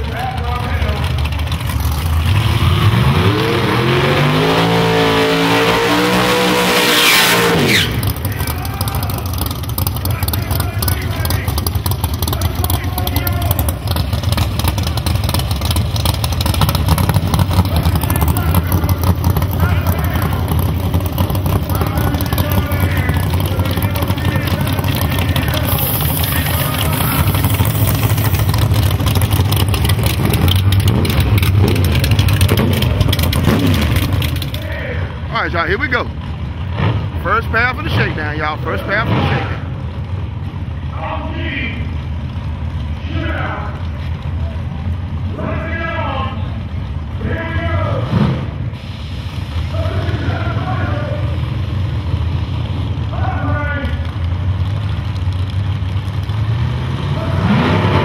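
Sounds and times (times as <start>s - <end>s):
low engine rumble: 0.0s - 6.7s, 7.4s - 58.0s
racing car engine high-revving: 1.1s - 34.6s, 56.2s - 58.0s
crowd chatter: 8.0s - 15.4s, 17.5s - 30.3s.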